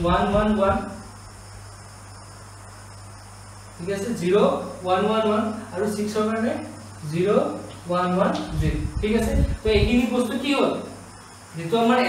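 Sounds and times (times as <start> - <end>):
faint background hum: 0.0 - 12.0.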